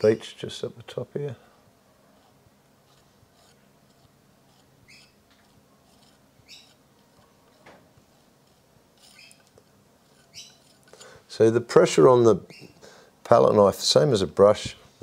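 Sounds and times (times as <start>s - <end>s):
palette knife scraping canvas: 2.1s - 11.2s.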